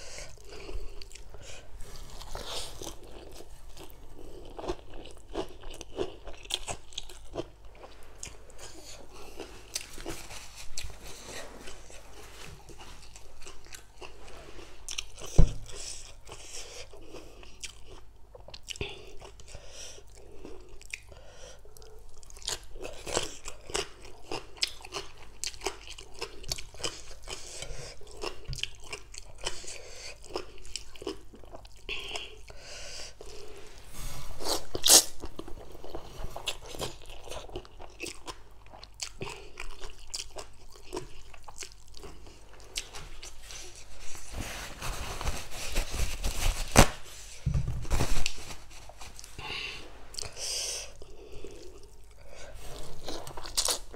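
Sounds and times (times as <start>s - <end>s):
crunchy chewing: 34.4s - 44.1s, 49.2s - 53.9s.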